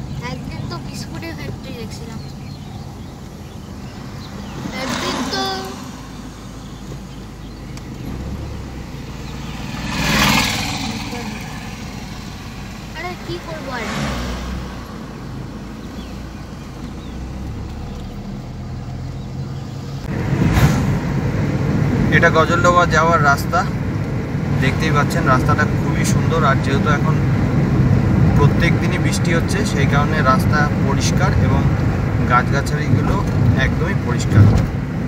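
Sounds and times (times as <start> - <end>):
car engine and road rumble: 0.0 - 35.0
rushing swells: 8.1 - 17.6.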